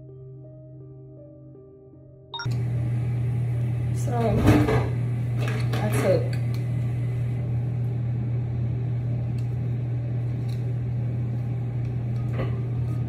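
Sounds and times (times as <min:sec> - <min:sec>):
low fan hum: 0:02.4 - 0:13.0.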